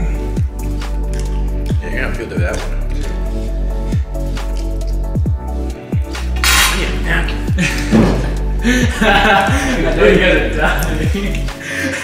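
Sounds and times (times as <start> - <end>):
music with deep bass: 0.0 - 12.0.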